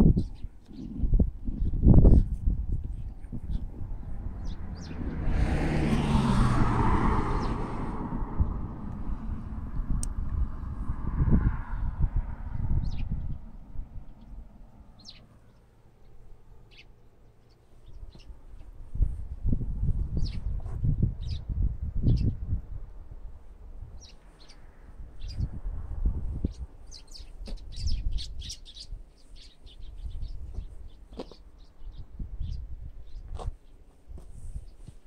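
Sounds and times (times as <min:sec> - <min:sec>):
small birds chirping: 0:00.0 - 0:05.3, 0:12.5 - 0:18.8, 0:20.0 - 0:22.4, 0:24.0 - 0:25.6, 0:26.3 - 0:35.0
wind gusts on microphone: 0:00.0 - 0:15.2, 0:17.8 - 0:35.0.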